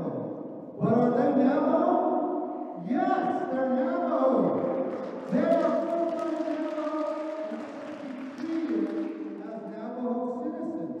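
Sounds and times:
man chanting over public address: 0:00.0 - 0:11.0.

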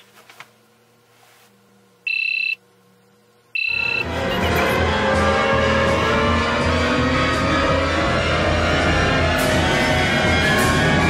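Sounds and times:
electronic alarm beeping: 0:02.1 - 0:02.6, 0:03.6 - 0:04.8
music: 0:03.7 - 0:11.0.

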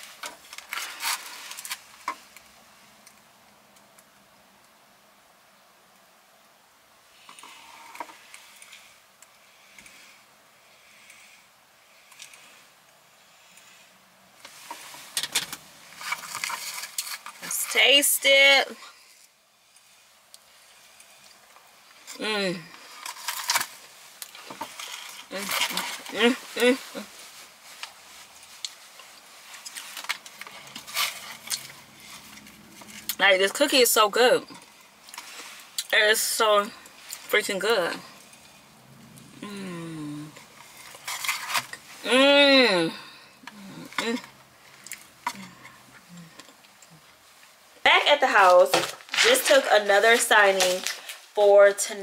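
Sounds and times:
woman humming mm sounds: 0:39.3 - 0:40.4.

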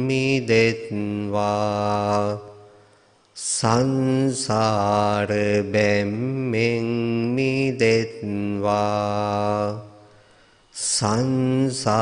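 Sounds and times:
man chanting: 0:00.0 - 0:02.8, 0:03.4 - 0:10.1, 0:10.7 - 0:12.0.

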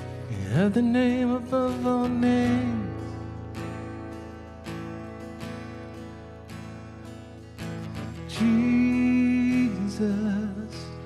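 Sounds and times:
strummed acoustic guitar chords: 0:00.0 - 0:11.0
sustained electric guitar: 0:00.0 - 0:11.0.

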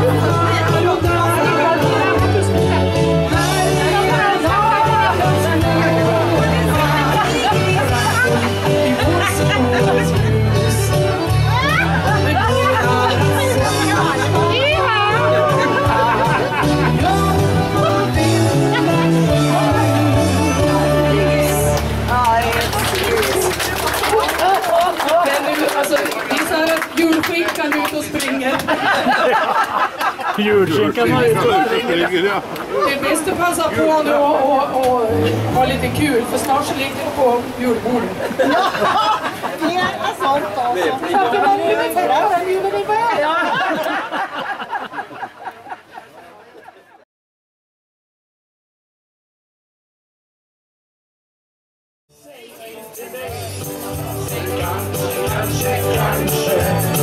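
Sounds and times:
bass guitar notes: 0:00.0 - 0:23.5, 0:34.9 - 0:36.6
live band music: 0:00.0 - 0:23.8, 0:34.8 - 0:36.8, 0:53.1 - 0:57.0
people chattering: 0:00.0 - 0:47.0, 0:52.2 - 0:57.0
people talking and laughing: 0:00.0 - 0:47.1, 0:52.2 - 0:57.0.

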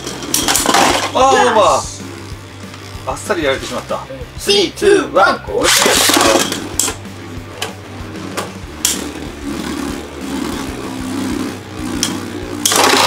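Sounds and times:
spinning tops clacking together: 0:00.0 - 0:01.2, 0:05.7 - 0:07.8, 0:12.0 - 0:13.0
spinning tops launched: 0:00.0 - 0:01.2, 0:05.6 - 0:07.1, 0:08.2 - 0:09.8, 0:11.4 - 0:13.0
spinning tops whirring: 0:00.0 - 0:04.1, 0:05.6 - 0:13.0.

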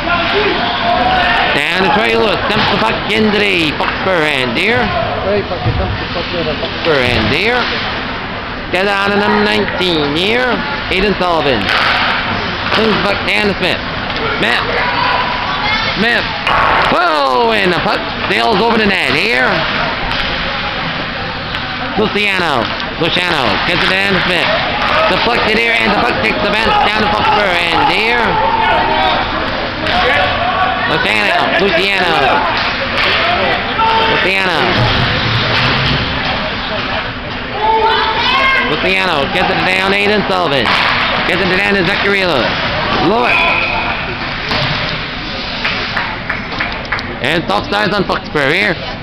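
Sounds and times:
crowd chatter: 0:00.0 - 0:49.0
ice hockey play on ice: 0:11.1 - 0:13.6, 0:14.4 - 0:30.4, 0:39.4 - 0:46.7.

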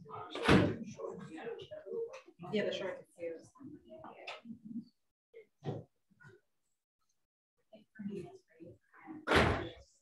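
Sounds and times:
indistinct background talk: 0:00.0 - 0:05.8, 0:07.6 - 0:10.0.

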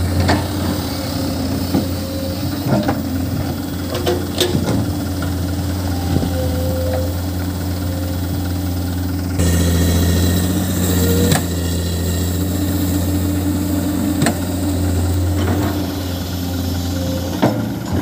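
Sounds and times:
diesel truck engine idling: 0:00.0 - 0:18.0.

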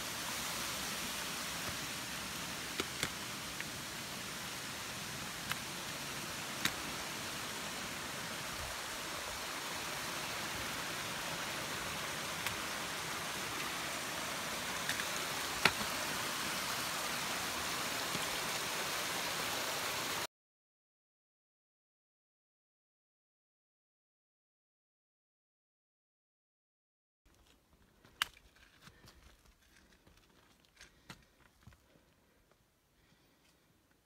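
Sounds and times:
steady rushing hiss: 0:00.0 - 0:20.3.

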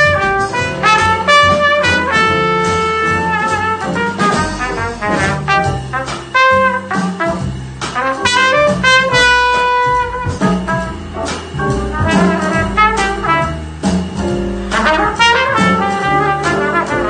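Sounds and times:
trumpet solo: 0:00.0 - 0:13.8, 0:14.7 - 0:17.0
drum kit with cymbals: 0:00.0 - 0:17.0
walking bass: 0:00.0 - 0:17.0.

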